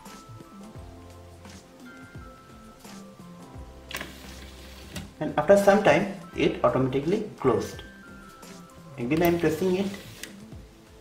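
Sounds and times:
background music: 0.0 - 11.0
sliding door click: 3.9 - 5.2.

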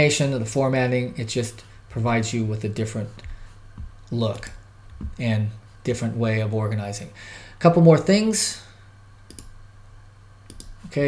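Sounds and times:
computer mouse clicking: 9.3 - 9.6, 10.5 - 10.8.

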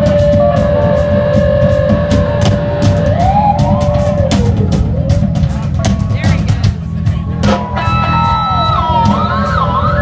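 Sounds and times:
bending lead note: 0.0 - 10.0
live band playing: 0.0 - 10.0.

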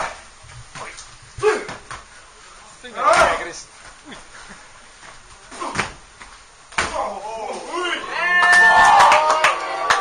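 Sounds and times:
wrestling strike slaps: 5.5 - 7.2
audience shouting: 7.1 - 10.0.

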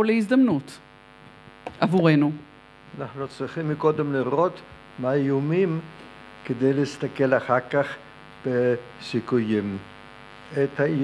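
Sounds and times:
steady electrical hum: 0.0 - 11.0
man speaking into a microphone: 2.9 - 9.9, 10.5 - 11.0.

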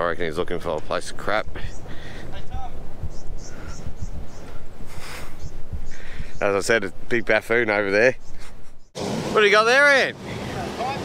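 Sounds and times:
wind buffeting microphone: 0.0 - 9.0.

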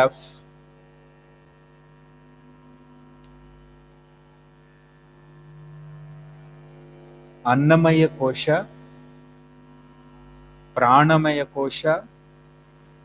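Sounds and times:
electrical mains hum: 0.0 - 13.0
faint click: 2.7 - 3.5.

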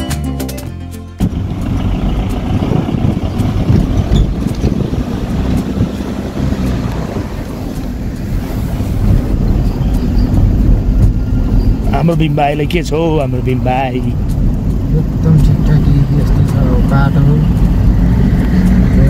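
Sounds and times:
car engine and road rumble: 0.0 - 19.0
wind rushing over microphone: 1.2 - 19.0.

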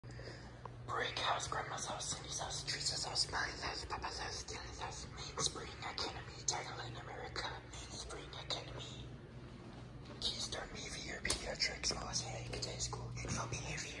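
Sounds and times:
low steady hum: 0.0 - 14.0
person whispering: 0.8 - 9.2, 10.1 - 14.0.

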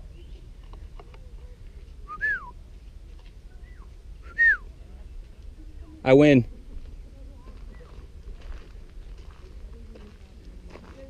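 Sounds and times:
whistled calls: 2.0 - 2.6, 3.6 - 4.7.

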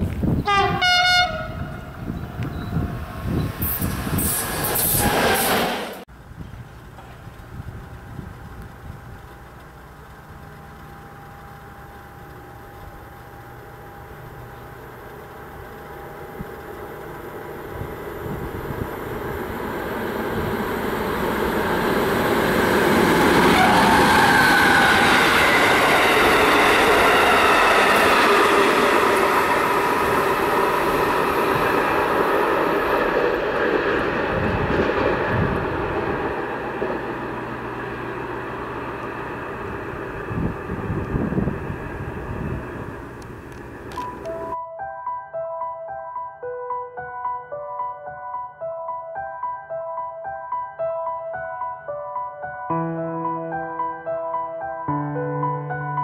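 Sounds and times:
train wheels on rails: 0.0 - 44.6
locomotive engine: 1.2 - 44.6.

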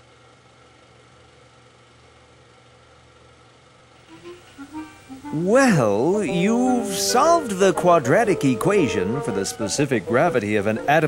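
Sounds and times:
faint background hiss: 3.9 - 11.0.

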